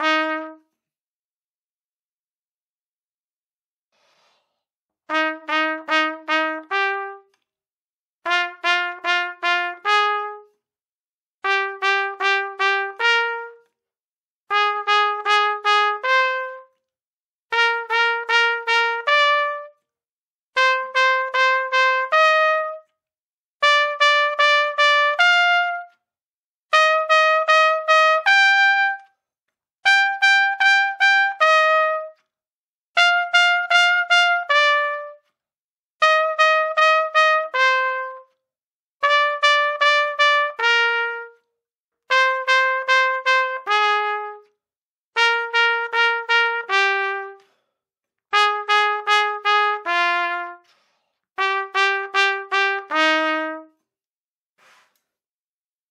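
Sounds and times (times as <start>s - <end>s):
trumpet tonguing exercise: 42.1s - 44.5s, 48.3s - 53.7s.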